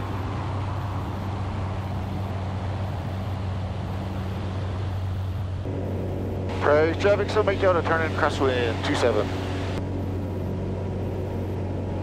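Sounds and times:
light aircraft engine drone: 0.0 - 12.0.

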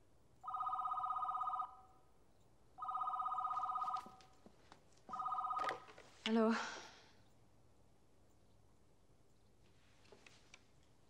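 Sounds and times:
desk telephone ringing: 0.4 - 1.9, 2.8 - 4.4, 5.1 - 6.1.

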